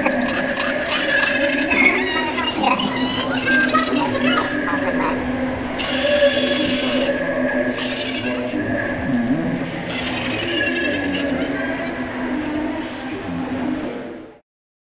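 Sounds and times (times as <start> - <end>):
faint voice: 0.0 - 9.8
constant low tone: 0.0 - 14.4.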